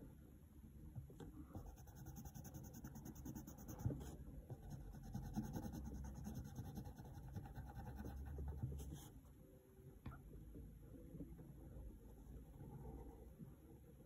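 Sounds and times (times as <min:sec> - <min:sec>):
pencil scratching on paper: 0:01.6 - 0:09.2.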